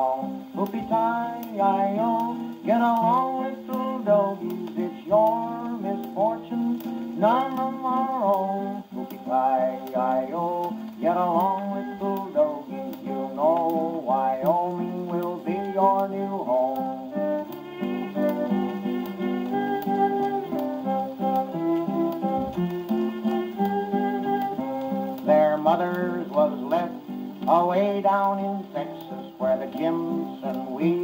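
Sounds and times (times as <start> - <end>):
phonograph record music: 0.0 - 31.0
record surface noise ticks: 0.0 - 31.0.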